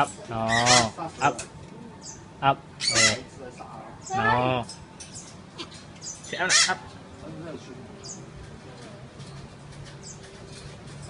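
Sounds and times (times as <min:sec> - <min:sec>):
parrot squawking: 0:00.4 - 0:01.4, 0:02.8 - 0:03.3, 0:05.6 - 0:06.9.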